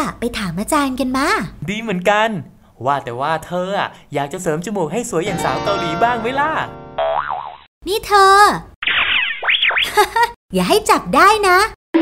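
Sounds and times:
cartoon boing: 7.0 - 7.7.

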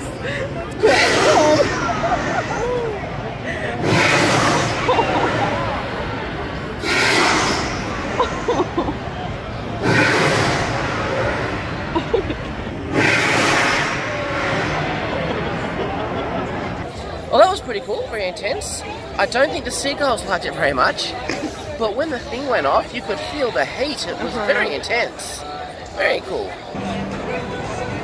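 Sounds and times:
crowd chatter: 0.0 - 28.0.

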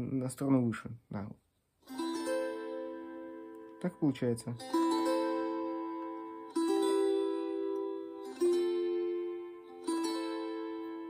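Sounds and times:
psaltery strummed in chords: 1.8 - 11.0.

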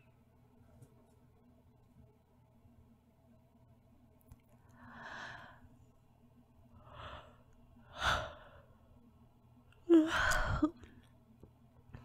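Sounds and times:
faint background hum: 0.0 - 12.0
woman breathing softly: 4.6 - 5.8, 6.8 - 8.9, 9.9 - 11.1.

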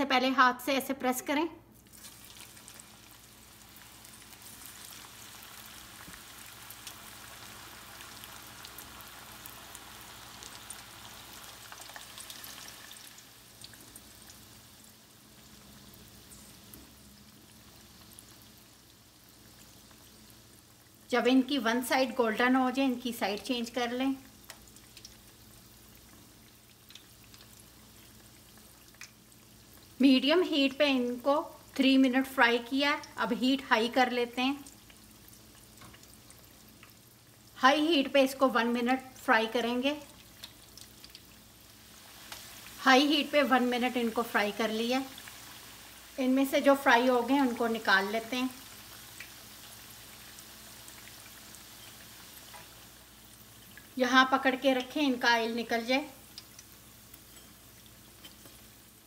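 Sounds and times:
food sizzling in oil: 1.8 - 59.0.

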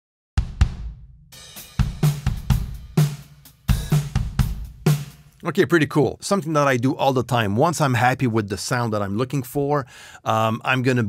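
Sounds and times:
acoustic drum kit groove: 0.4 - 6.7.

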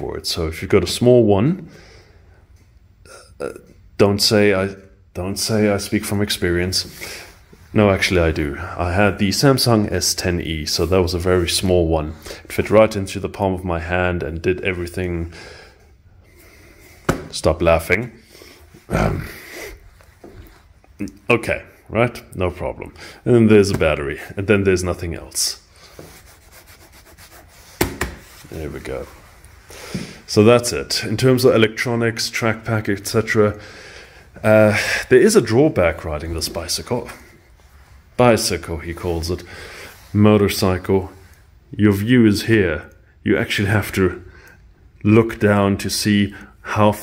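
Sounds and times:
hand rubbing plastic bodywork: 16.8 - 17.8, 23.5 - 30.3
sharp knock: 17.1 - 17.3, 27.8 - 28.2
man saying uh: 18.9 - 19.5.

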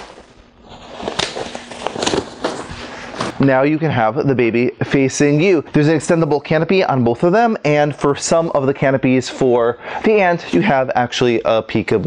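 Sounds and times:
fabric rustling: 0.0 - 3.4.

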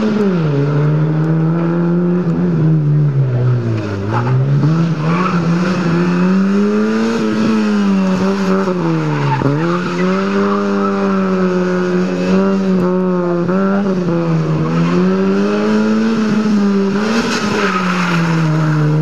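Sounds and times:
car engine at high revs: 0.0 - 19.0.

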